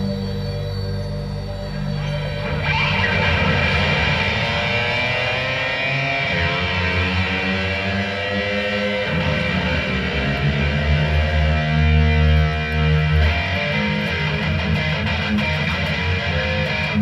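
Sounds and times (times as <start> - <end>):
loud electric guitar: 0.0 - 17.0.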